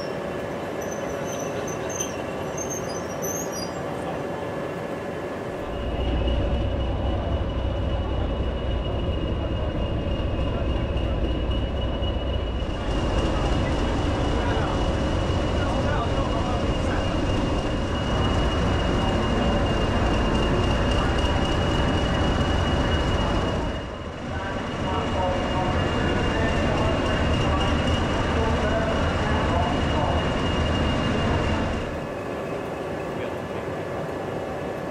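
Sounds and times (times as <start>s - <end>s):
diesel locomotive engine idling: 0.0s - 34.9s.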